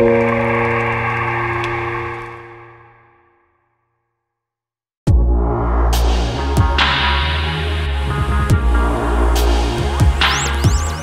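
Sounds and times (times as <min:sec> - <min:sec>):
chill piano music: 0:00.0 - 0:02.8.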